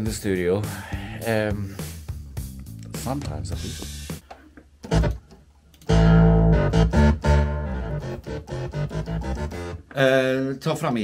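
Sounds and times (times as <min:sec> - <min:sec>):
electronic keyboard playing: 0:04.8 - 0:05.2, 0:05.8 - 0:09.9.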